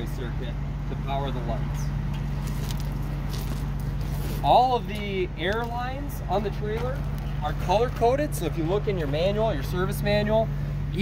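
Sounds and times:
footsteps on gravel: 2.3s - 8.0s.

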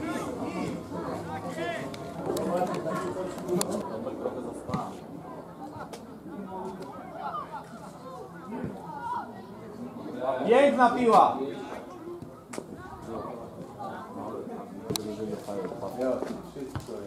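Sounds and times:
people calling and talking: 0.0s - 17.0s.

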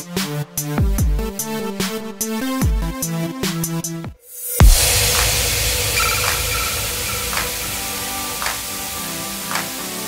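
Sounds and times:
soft hiss-like beats: 4.5s - 10.0s
electronic outro music: 4.6s - 10.0s
heavy hit: 4.6s - 10.0s.

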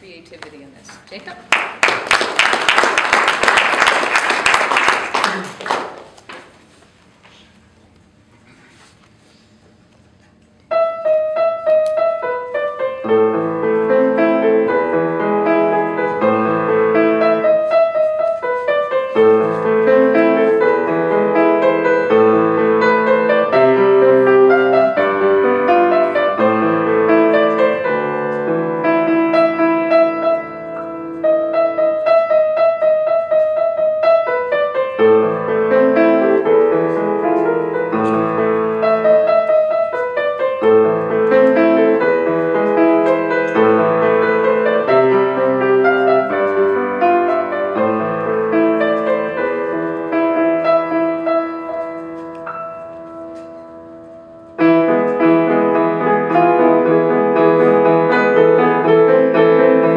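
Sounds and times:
solo grand piano: 10.6s - 59.9s.

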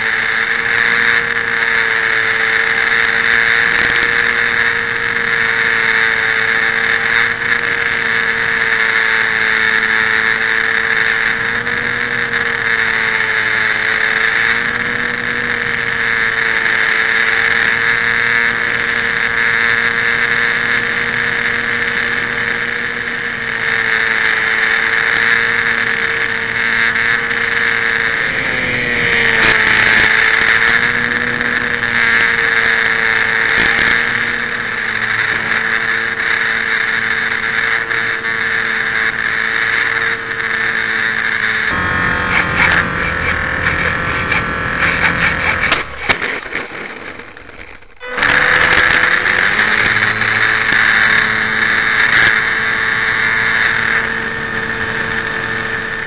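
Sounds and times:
electric motor and propeller whine: 0.0s - 56.0s.

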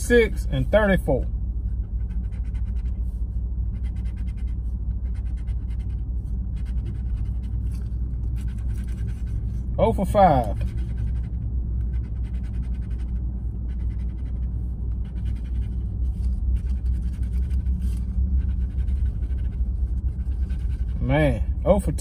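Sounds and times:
low car cabin hum: 0.0s - 22.0s
scratching lottery ticket: 0.0s - 22.0s.

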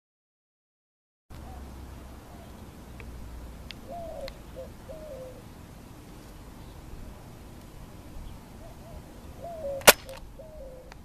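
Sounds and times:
gunshot crack: 9.8s - 10.2s.

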